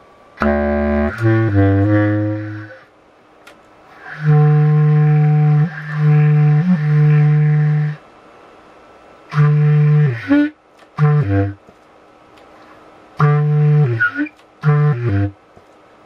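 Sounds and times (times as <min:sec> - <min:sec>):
low single-reed woodwind notes: 0:00.4 - 0:02.9, 0:03.9 - 0:08.0, 0:09.3 - 0:11.6, 0:13.2 - 0:15.4.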